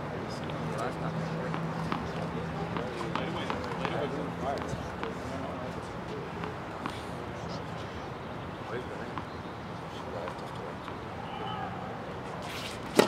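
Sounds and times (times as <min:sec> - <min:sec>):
distant voices: 0:00.1 - 0:13.0
tennis balls bouncing and hit: 0:00.7 - 0:07.9, 0:10.2 - 0:11.1, 0:12.2 - 0:13.0.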